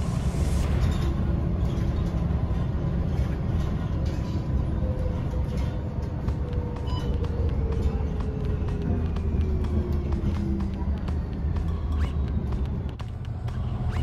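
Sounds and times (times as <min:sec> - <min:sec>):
bus engine and road rumble: 0:00.0 - 0:14.0
falling engine whine: 0:00.0 - 0:14.0.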